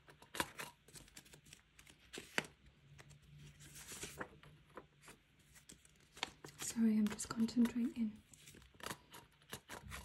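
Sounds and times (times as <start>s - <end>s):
plastic rustling and crinkling: 0.4s - 10.0s.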